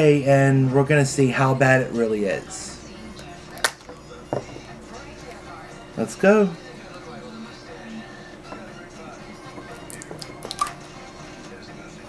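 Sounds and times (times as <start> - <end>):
plastic jar lid crackling: 9.6 - 10.8.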